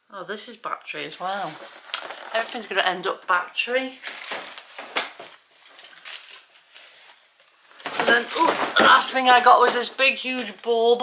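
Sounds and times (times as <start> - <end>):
cardboard packaging rustling: 1.2 - 3.2, 4.0 - 11.0.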